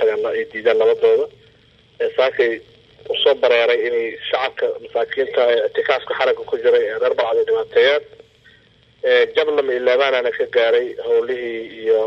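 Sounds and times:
person talking: 0:09.0 - 0:12.0.

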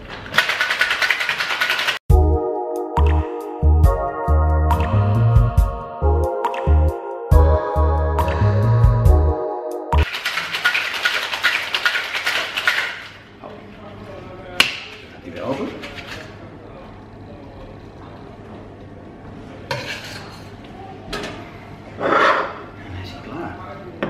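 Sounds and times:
ice rattling in metal shaker: 0:00.3 - 0:02.0, 0:10.0 - 0:13.2, 0:15.4 - 0:16.4
shaker tins knocked apart: 0:10.0 - 0:13.2.

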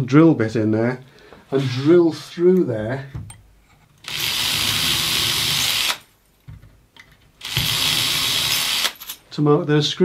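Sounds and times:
cordless drill drilling into wood: 0:04.0 - 0:06.0, 0:07.4 - 0:09.0.

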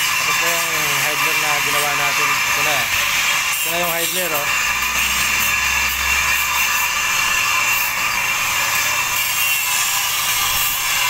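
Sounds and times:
power tool high-pitched whine: 0:00.0 - 0:11.0.

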